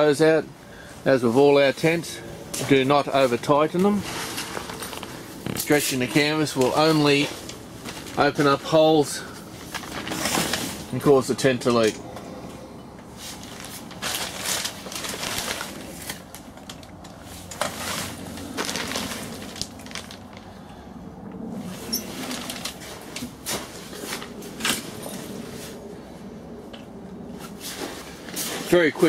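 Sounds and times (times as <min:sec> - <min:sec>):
tent canvas rustling and flapping: 0:02.6 - 0:08.7, 0:09.5 - 0:11.0, 0:13.2 - 0:20.4, 0:21.6 - 0:25.8, 0:27.4 - 0:29.0.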